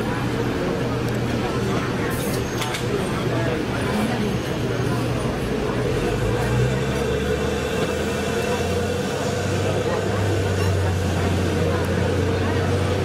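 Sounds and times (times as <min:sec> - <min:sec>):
vehicle engine idling: 0:05.0 - 0:13.0.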